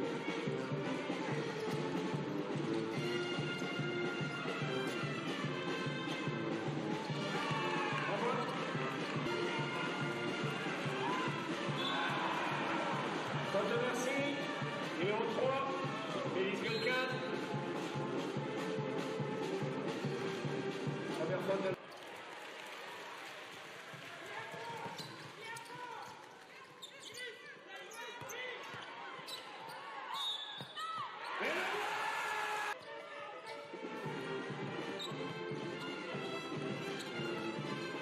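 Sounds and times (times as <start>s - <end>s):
arena crowd noise: 0.0s - 38.0s
sneakers squeaking: 0.3s - 6.3s, 8.2s - 14.5s, 16.5s - 17.5s, 24.5s - 31.7s, 32.8s - 38.0s.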